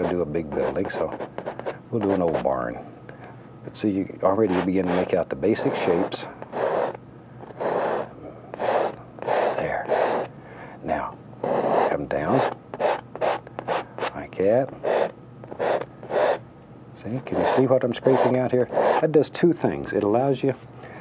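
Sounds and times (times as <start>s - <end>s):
painting knife scraping canvas: 0.0s - 2.5s, 4.4s - 10.3s, 11.4s - 14.2s, 14.8s - 16.4s, 17.3s - 19.2s.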